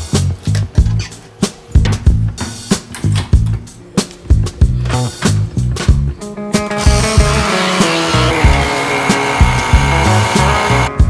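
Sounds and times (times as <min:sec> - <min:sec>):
background music with a beat: 0:00.0 - 0:11.0
coffee machine pump buzzing: 0:06.8 - 0:11.0.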